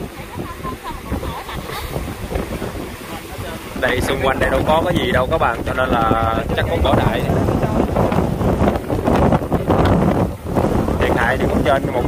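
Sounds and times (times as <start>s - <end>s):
waves washing over rocks: 0.0s - 12.0s
wind buffeting microphone: 0.0s - 12.0s.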